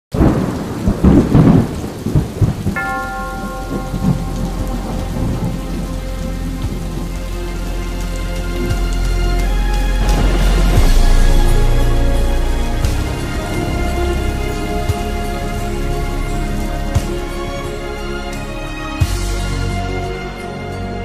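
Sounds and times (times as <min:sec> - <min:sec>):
thunder rumble: 0:00.1 - 0:20.4
steady rain: 0:00.1 - 0:21.0
held chord of sustained notes: 0:02.8 - 0:21.0.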